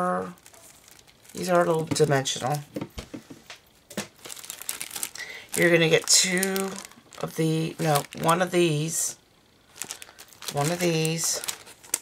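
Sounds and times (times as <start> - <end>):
plastic packages crinkling: 0.3 - 2.8, 3.9 - 12.0.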